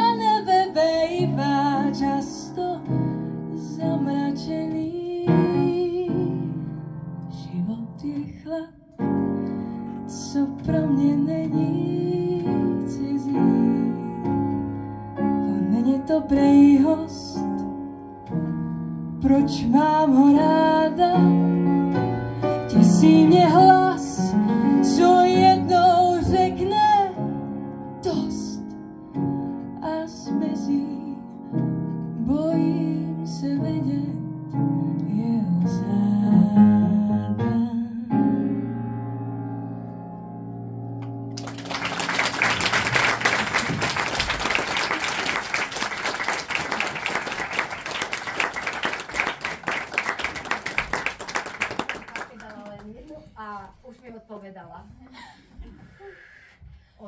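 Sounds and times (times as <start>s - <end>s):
piano: 0.0s - 57.0s.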